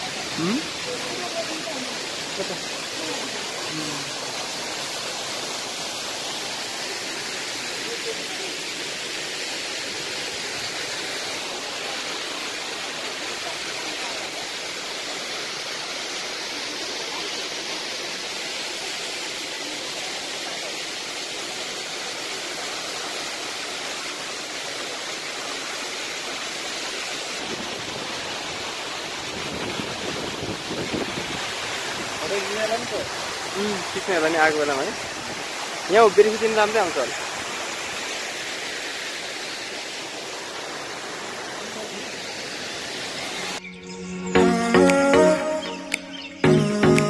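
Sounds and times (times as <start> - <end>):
waterfall rushing: 0.0 - 43.6, 44.3 - 47.0.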